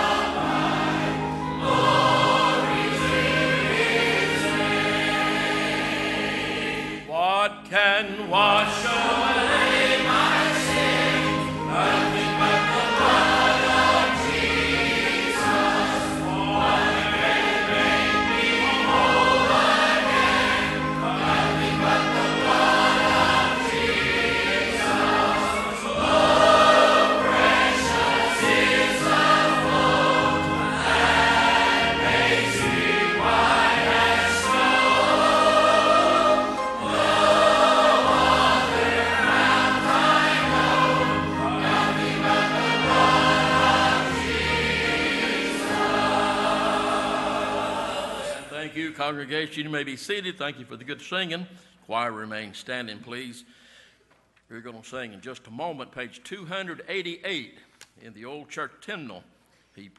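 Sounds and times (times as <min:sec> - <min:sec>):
instrumental accompaniment: 0:00.0 - 0:07.1, 0:08.1 - 0:48.5
congregation and choir singing: 0:00.0 - 0:49.2.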